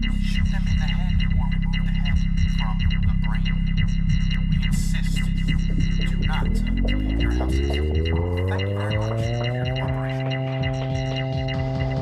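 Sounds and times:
deep synthesizer drone rising: 0.0s - 12.0s.

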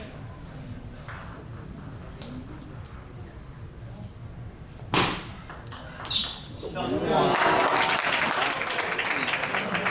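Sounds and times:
table tennis ball struck: 4.9s - 5.8s.

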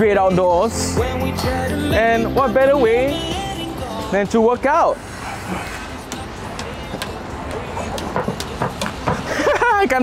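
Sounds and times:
skipping rope slapping wooden deck: 7.8s - 9.4s.

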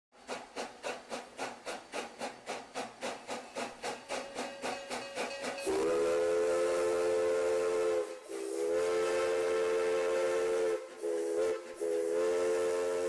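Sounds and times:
steam locomotive chuffing: 0.1s - 13.0s
steam whistle blowing: 4.1s - 13.0s.

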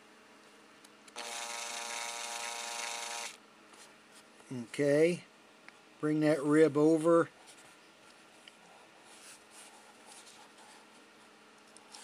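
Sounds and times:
small electric motor whirring: 1.1s - 3.4s.

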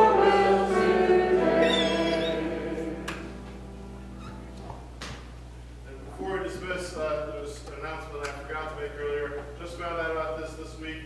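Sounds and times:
church service music: 0.0s - 11.0s
low electrical hum: 0.0s - 11.0s.

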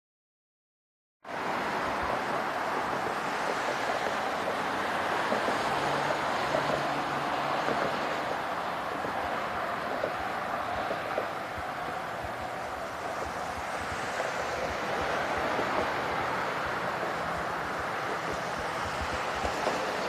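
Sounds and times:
freeway traffic rushing: 1.2s - 20.0s.

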